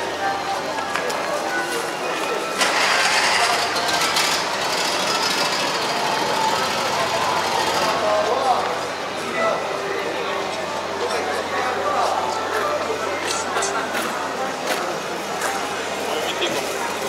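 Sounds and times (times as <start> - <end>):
crowd voices: 0.0 - 17.0.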